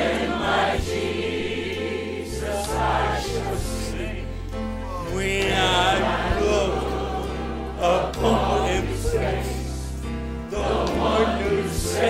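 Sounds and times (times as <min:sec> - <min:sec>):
choir singing gospel music: 0:00.0 - 0:12.0.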